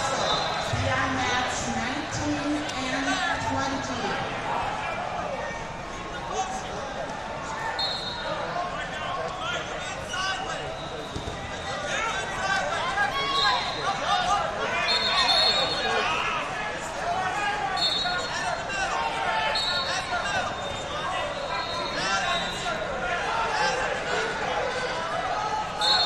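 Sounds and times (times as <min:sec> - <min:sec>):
voices calling out in echoing hall: 0:00.0 - 0:26.0.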